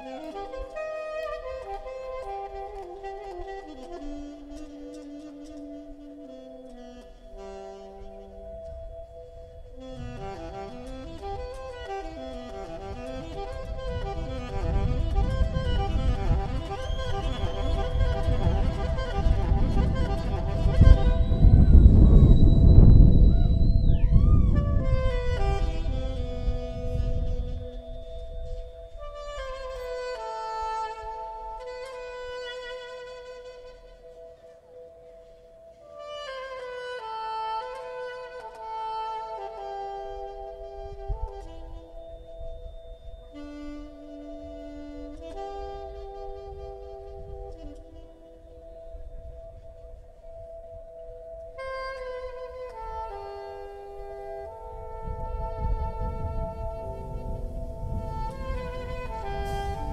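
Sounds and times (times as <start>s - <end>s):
jazz fusion band playing: 0.0s - 22.1s, 24.8s - 59.9s.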